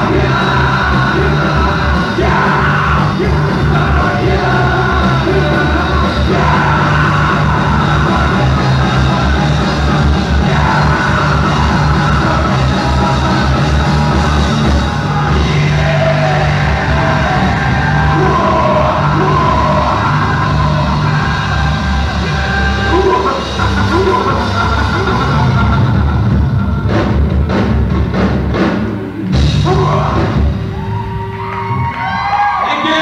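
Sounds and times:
man singing: 0.0 - 14.1, 14.8 - 25.6
live rock band playing: 0.0 - 33.0.

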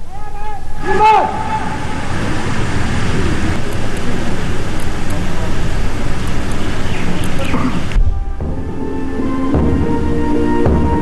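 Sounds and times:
wind buffeting microphone: 0.6 - 8.4.

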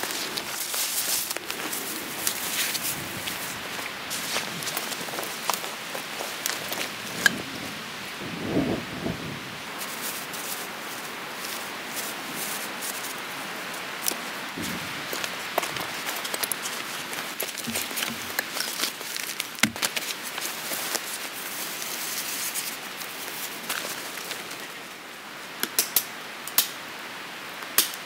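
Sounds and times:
dry bracken rustling and crackling: 0.0 - 7.8, 9.7 - 25.0
steady hiss: 0.0 - 28.0.

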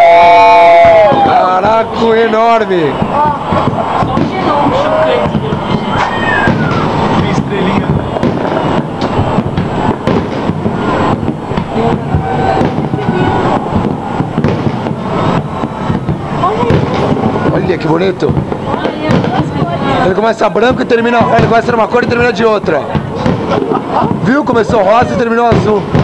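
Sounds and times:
fireworks bursting and crackling: 0.0 - 26.0.

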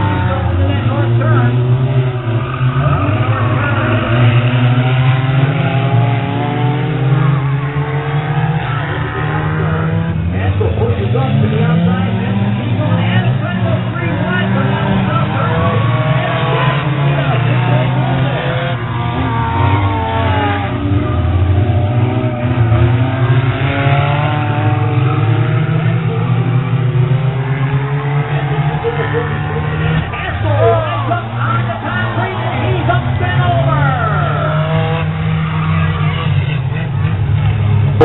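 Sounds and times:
race car engines revving: 0.0 - 38.0
voices: 0.0 - 38.0.

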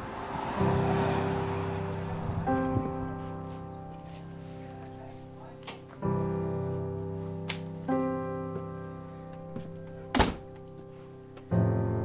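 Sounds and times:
slow piano music: 0.0 - 12.0
loud thunk: 10.1 - 10.4.

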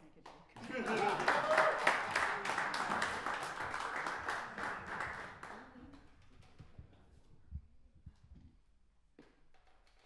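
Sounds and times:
audience applause: 0.6 - 5.8.

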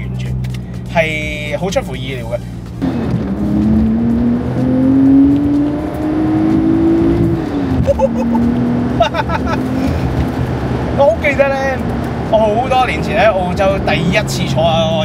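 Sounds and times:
car engine accelerating: 0.0 - 15.0
person exclaiming: 7.8 - 8.5.

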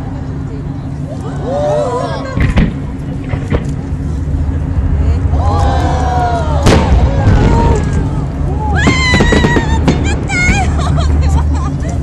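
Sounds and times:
crowd rumble: 0.0 - 12.0.

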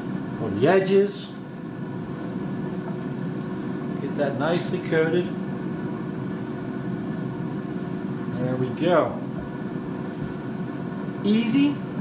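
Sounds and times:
air fryer fan humming: 0.0 - 12.0.

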